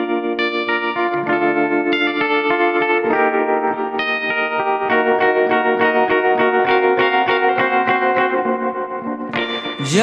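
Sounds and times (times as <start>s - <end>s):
electric guitar chord arpeggio: 0.0s - 10.0s.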